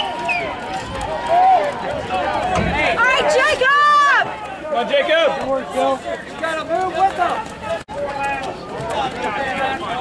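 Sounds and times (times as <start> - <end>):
distant spectators calling out: 0.0 - 10.0
outdoor background noise: 0.0 - 10.0.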